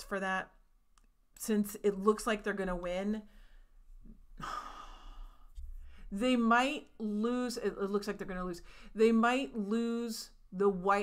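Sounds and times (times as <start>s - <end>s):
woman breathing out: 4.4s - 6.1s.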